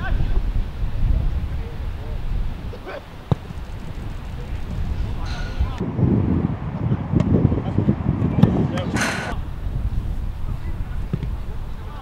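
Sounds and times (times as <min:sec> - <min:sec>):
wind on microphone: 0:00.0 - 0:12.0
football kicked hard: 0:03.2 - 0:03.6.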